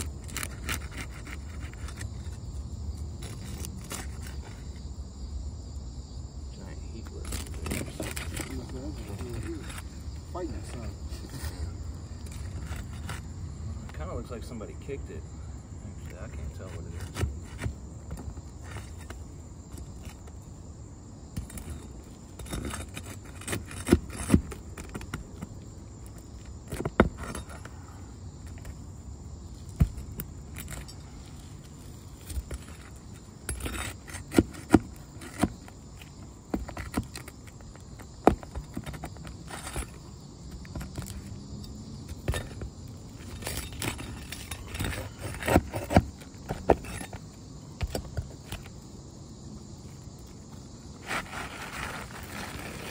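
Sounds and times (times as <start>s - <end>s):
pry bar scraping shingles: 0.0s - 4.8s, 7.0s - 14.7s, 15.9s - 20.6s, 21.3s - 48.8s, 49.9s - 52.9s.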